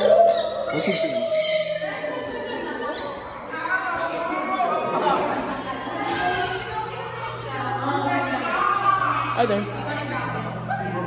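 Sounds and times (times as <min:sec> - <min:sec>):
indistinct chatter of people: 0:00.0 - 0:11.0.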